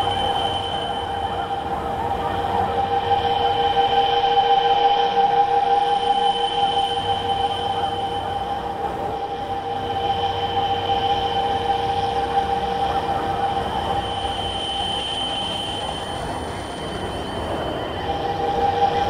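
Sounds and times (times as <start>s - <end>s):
high sustained drone tones: 0.0s - 19.0s.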